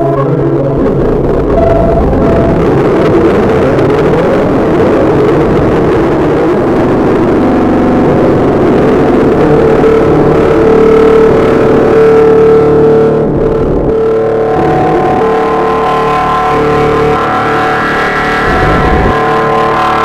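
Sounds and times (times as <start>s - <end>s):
high held note: 0.0s - 3.7s, 9.3s - 20.0s
loud electronic music: 14.2s - 20.0s.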